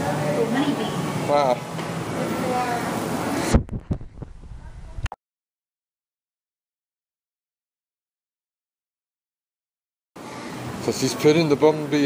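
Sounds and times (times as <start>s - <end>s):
microphone handling rush: 3.4s - 5.1s.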